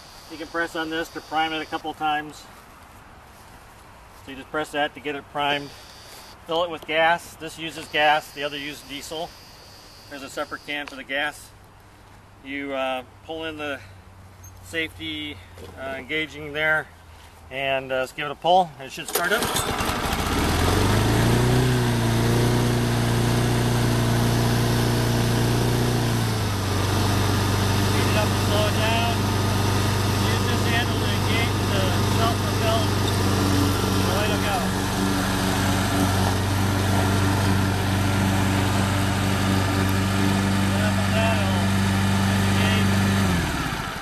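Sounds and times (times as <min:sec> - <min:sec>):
lawn mower engine running: 0:19.1 - 0:44.0.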